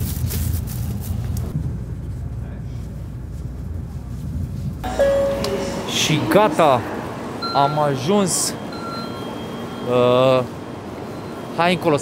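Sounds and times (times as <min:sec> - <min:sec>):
low train carriage rumble: 0:01.4 - 0:12.0
steady electronic tone: 0:04.8 - 0:12.0.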